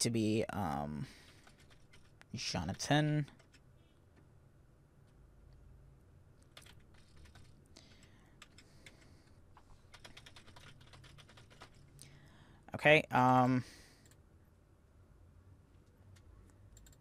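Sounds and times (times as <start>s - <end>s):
computer keyboard typing: 1.2s - 3.7s, 6.4s - 11.9s, 16.1s - 17.0s.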